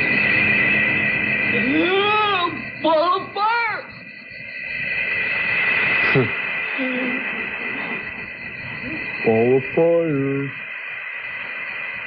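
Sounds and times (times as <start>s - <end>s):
rushing noise: 0.0s - 2.9s, 4.2s - 12.0s
high electronic whine: 0.0s - 12.0s
low hoot-like tone: 0.0s - 12.0s.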